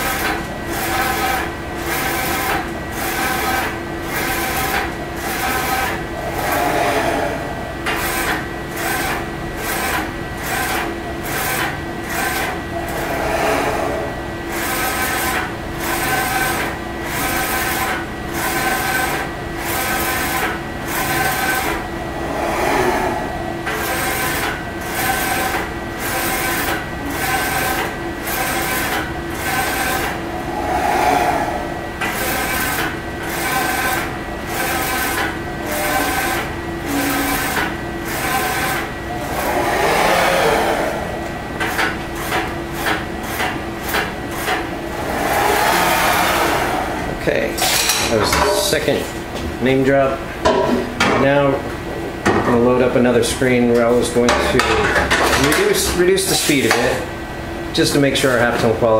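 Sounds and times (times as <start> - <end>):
steady hum: 0.0 - 17.3, 18.0 - 26.2, 26.8 - 47.9.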